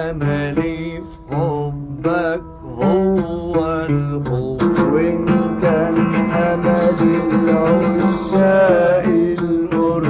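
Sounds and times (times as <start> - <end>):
oud melody: 0.0 - 10.0.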